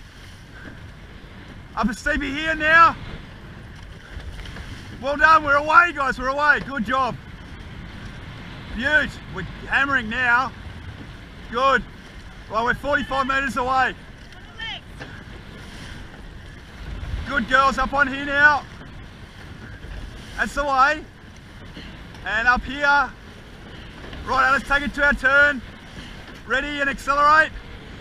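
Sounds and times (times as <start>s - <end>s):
water rushing along hull: 0.0s - 28.0s
wind buffeting microphone: 0.0s - 28.0s.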